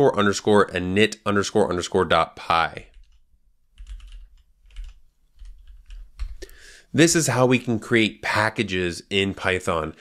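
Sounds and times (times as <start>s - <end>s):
computer keyboard typing: 2.9s - 6.5s.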